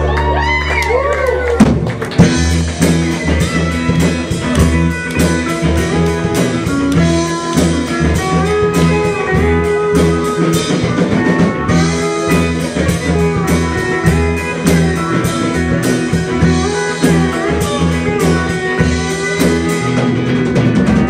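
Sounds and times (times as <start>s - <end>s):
bending electric guitar lines: 0.0s - 21.0s
live rock band playing: 0.0s - 21.0s
drums keeping steady beat: 1.4s - 21.0s.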